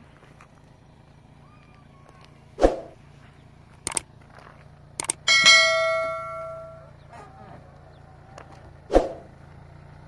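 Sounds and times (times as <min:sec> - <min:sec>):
notification bell ding: 0:05.3 - 0:06.9.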